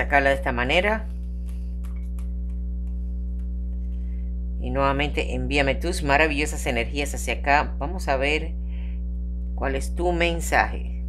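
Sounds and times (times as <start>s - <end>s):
low hum: 0.0s - 11.0s
cards being shuffled: 1.0s - 4.0s.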